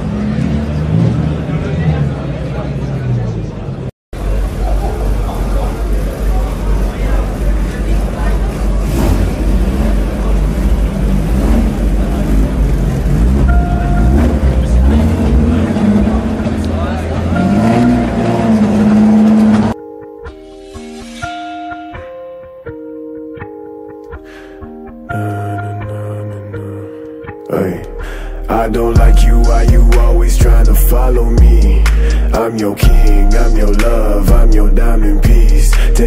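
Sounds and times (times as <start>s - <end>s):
crowd chatter: 0.0s - 19.6s
car engines revving: 0.0s - 19.8s
music with plucked guitar: 19.6s - 28.0s.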